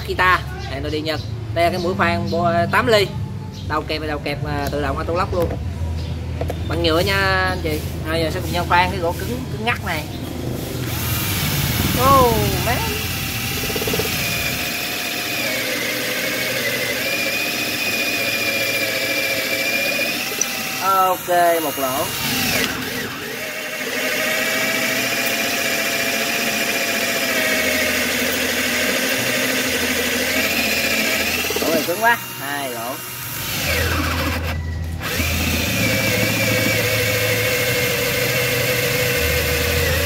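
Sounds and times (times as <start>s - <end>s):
cordless drill motor running: 10.2s - 40.0s
drill bit cutting into wood: 10.7s - 40.0s.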